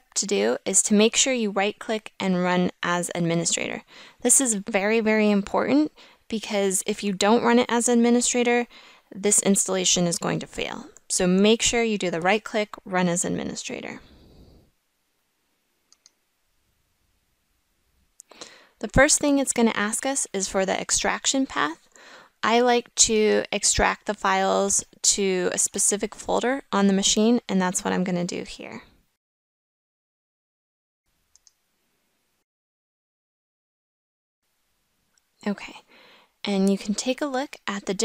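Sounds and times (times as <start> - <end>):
faint microphone hiss: 0.0 - 29.2, 31.1 - 32.4, 34.4 - 38.0.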